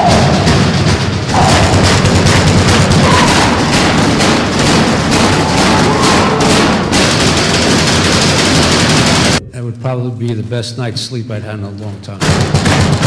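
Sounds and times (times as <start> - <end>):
rapid banging and clatter: 0.0 - 9.4, 10.3 - 13.0.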